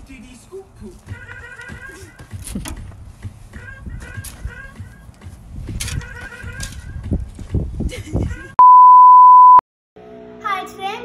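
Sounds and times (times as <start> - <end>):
high-pitched electronic beep: 8.6 - 9.6.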